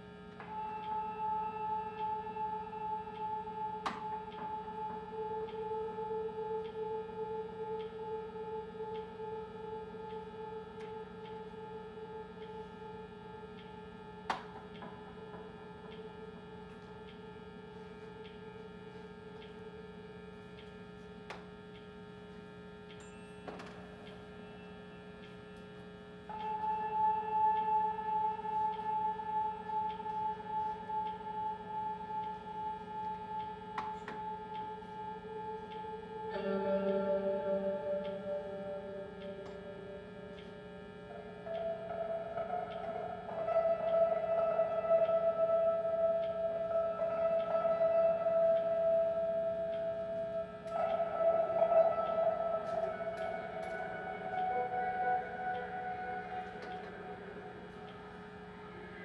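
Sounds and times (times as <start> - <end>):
faint clicks: 3.1 - 59.0.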